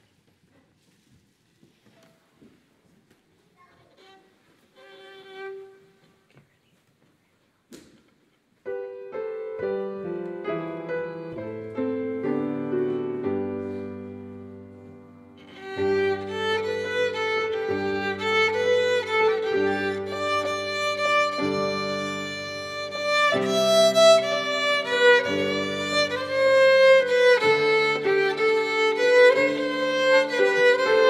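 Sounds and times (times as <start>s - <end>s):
violin melody: 3.8s - 6.1s, 9.0s - 31.0s
piano chords: 8.6s - 31.0s.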